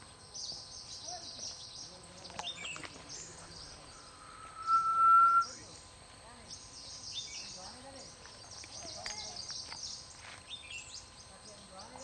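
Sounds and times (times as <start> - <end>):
faint high-pitched chirring: 2.3 - 7.6
bird whistling long note: 3.8 - 5.7.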